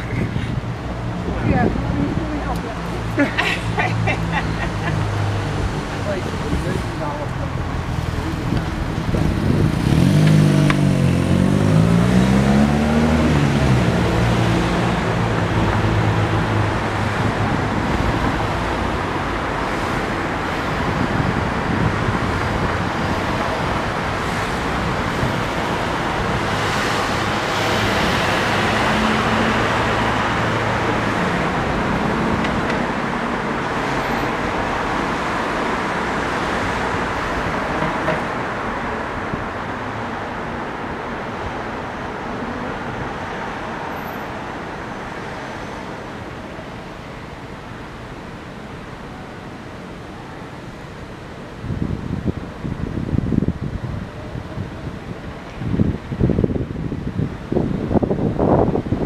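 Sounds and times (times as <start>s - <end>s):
road noise: 0.0s - 59.0s
vehicle engine passing: 7.6s - 17.3s.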